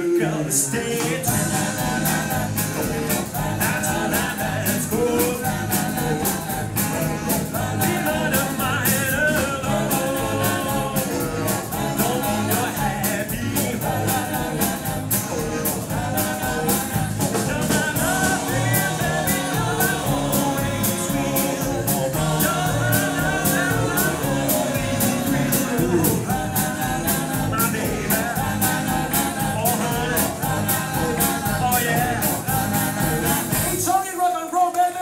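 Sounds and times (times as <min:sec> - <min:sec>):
backing band with electric guitar: 0:00.0 - 0:34.0
vocal group singing: 0:00.0 - 0:34.2.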